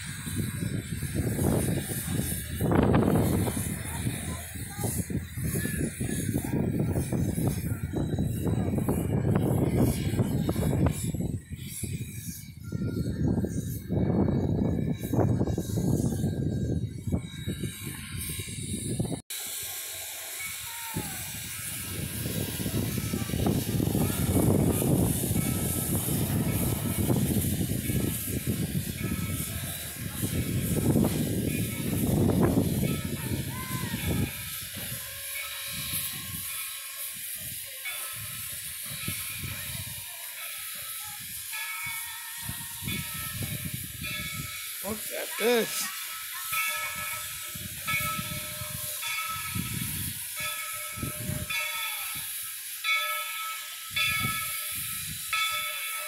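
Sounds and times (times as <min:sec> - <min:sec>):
steam hissing: 0:00.0 - 0:56.0.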